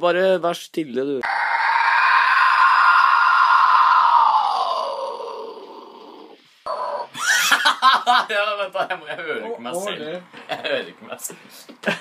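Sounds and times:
harsh vocal scream: 0:01.2 - 0:07.3.

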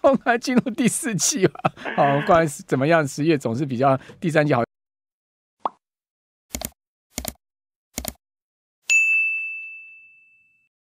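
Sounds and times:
notification bell ding: 0:08.9 - 0:10.7.

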